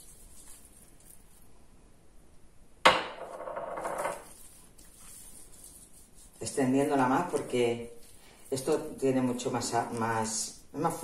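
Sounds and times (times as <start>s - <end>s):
hands rubbing meat: 0.0s - 1.5s, 4.1s - 11.0s.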